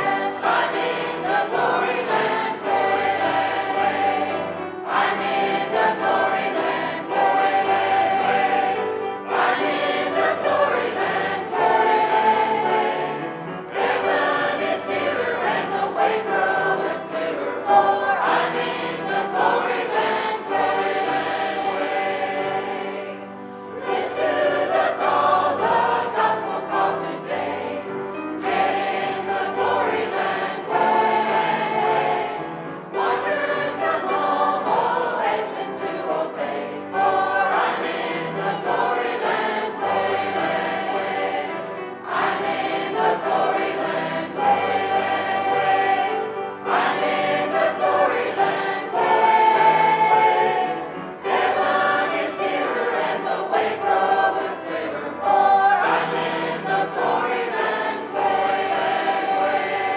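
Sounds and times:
mixed choir singing a hymn: 0.0 - 59.9.

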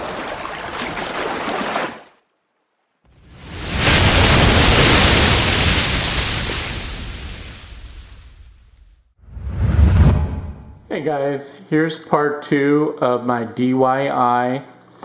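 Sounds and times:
short rush of water: 3.2 - 8.2
breaking wave surge: 3.2 - 8.4, 9.2 - 10.8.

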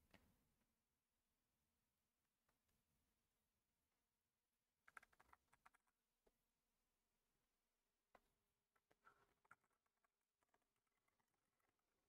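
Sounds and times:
faint keyboard typing: 4.8 - 6.0, 8.2 - 12.0.

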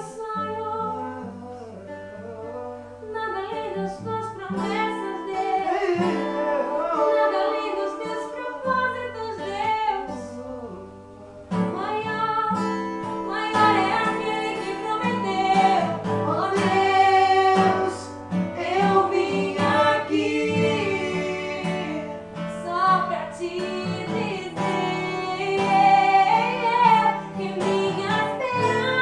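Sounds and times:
acoustic guitar: 0.0 - 29.0
man and woman singing: 0.0 - 29.0.

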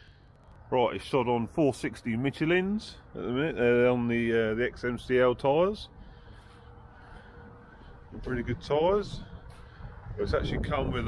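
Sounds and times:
faint steady hum: 0.0 - 10.2.

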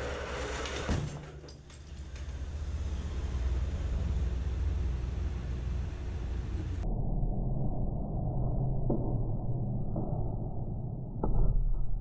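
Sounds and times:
low rumble of car pulled: 0.0 - 6.8.

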